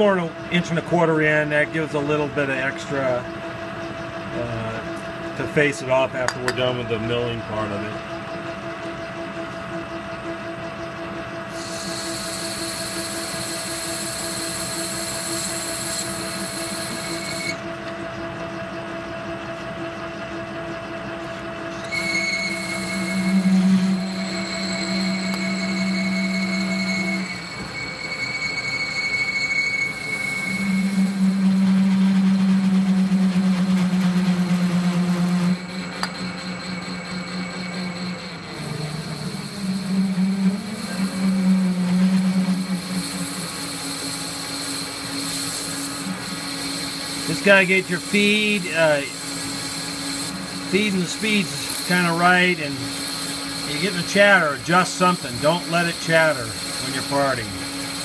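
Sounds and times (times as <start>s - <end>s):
loud humming tool chatter: 0.0s - 58.0s
metal lathe cutting whine: 0.0s - 58.0s.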